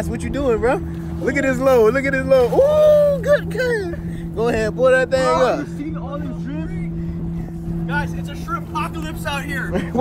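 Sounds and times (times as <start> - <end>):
engine idling hum: 0.0 - 10.0.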